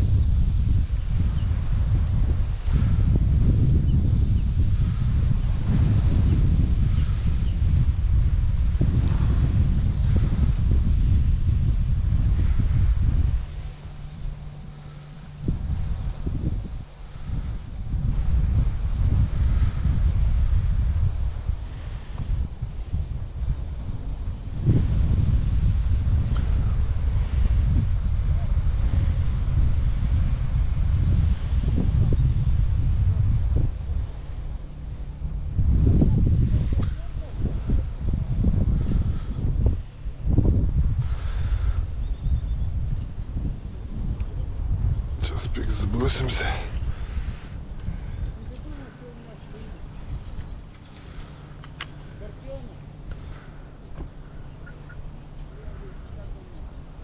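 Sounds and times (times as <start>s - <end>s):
wind buffeting the microphone: 0.0s - 57.0s.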